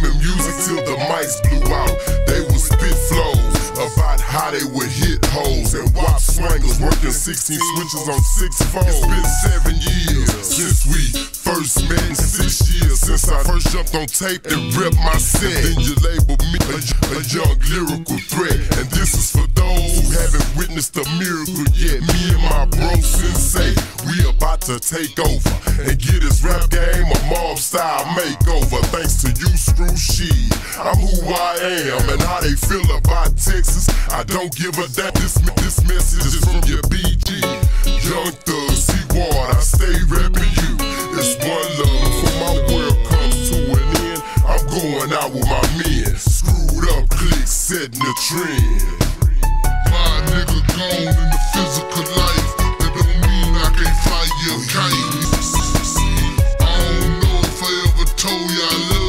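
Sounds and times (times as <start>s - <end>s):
heavy bass line and drums: 0.0s - 59.0s
slowed rap vocal: 0.0s - 59.0s.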